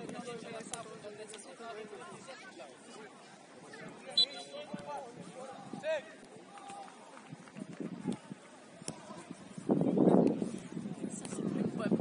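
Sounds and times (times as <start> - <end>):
players running on turf: 4.6 - 12.0.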